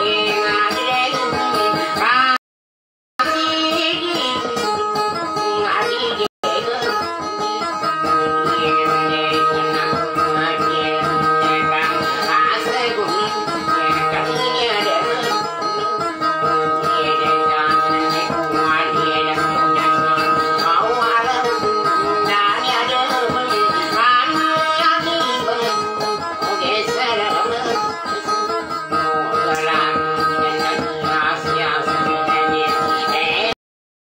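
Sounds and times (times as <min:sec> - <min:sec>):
acoustic guitar plucking melody: 0:00.0 - 0:02.1, 0:03.2 - 0:33.6
person singing: 0:00.0 - 0:02.4, 0:05.5 - 0:33.6.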